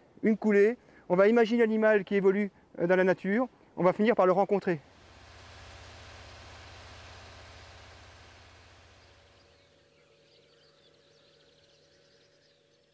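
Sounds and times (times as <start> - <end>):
low steady rumble: 4.7 - 10.9
small birds chirping: 8.4 - 12.9.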